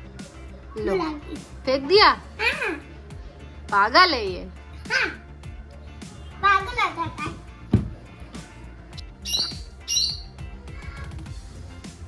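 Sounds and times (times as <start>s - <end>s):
background music: 0.0s - 12.0s
parakeet squawking: 9.2s - 10.4s.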